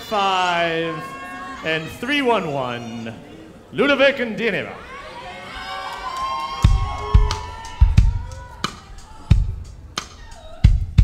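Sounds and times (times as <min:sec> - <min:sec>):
heavy kick-drum beat: 0:06.6 - 0:11.0.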